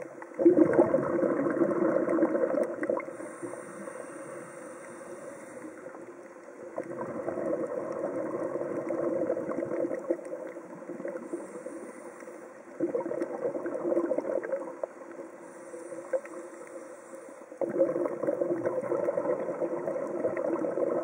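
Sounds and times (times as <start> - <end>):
underwater exhaled air bubbling: 0.0 - 21.0.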